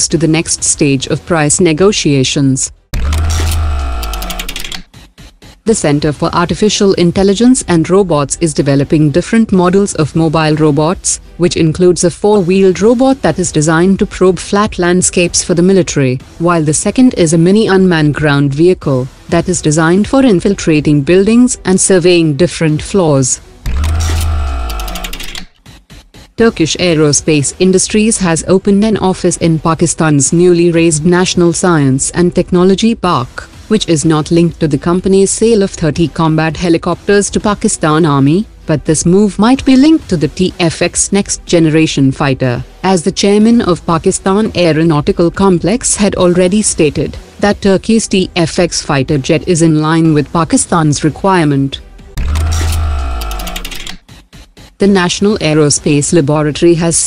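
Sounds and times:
rapid stuttering clicks: 0:03.0 - 0:05.7, 0:23.7 - 0:26.4, 0:52.2 - 0:54.8.

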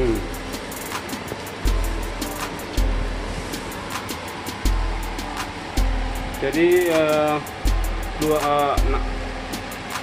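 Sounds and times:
hi-hat ticks: 0:00.0 - 0:02.9, 0:03.5 - 0:10.0.

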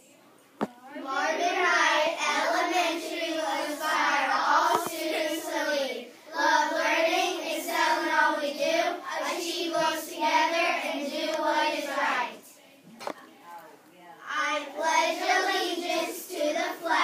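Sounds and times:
children reciting in unison: 0:00.9 - 0:12.6, 0:14.3 - 0:17.0.

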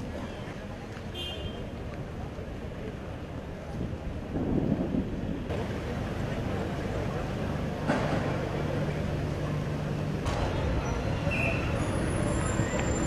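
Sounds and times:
vehicle engine low hum: 0:01.7 - 0:13.0.

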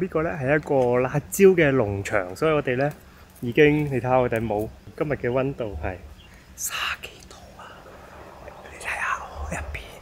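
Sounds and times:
man whispering: 0:06.6 - 0:10.0.

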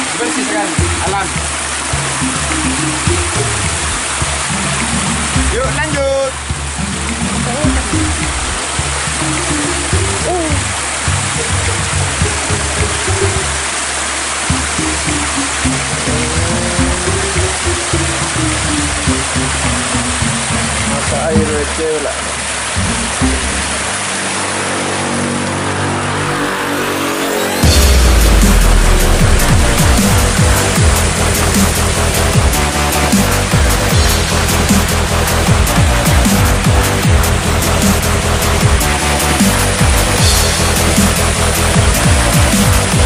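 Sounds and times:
spring water splashing over stones: 0:00.0 - 0:25.6, 0:27.4 - 0:43.0.

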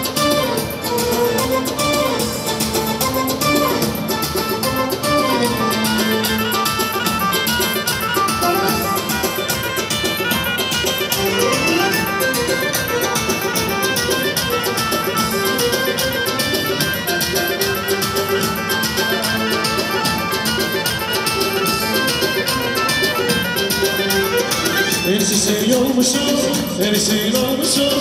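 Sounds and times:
violin-like melody: 0:00.0 - 0:26.5
steady drum beat: 0:00.0 - 0:28.0.

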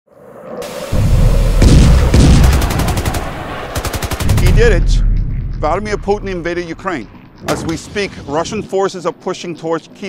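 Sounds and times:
rumble of explosions: 0:00.6 - 0:09.8.

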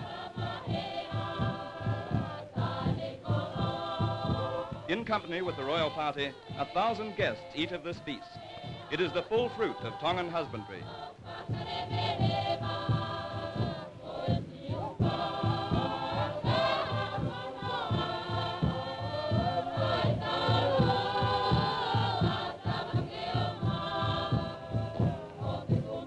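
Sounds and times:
choir singing in harmony: 0:00.0 - 0:26.0
steady low beat: 0:00.0 - 0:26.0.

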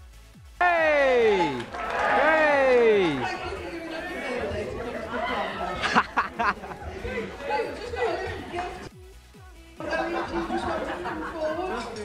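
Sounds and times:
voices chattering: 0:00.6 - 0:08.9, 0:09.8 - 0:12.0.

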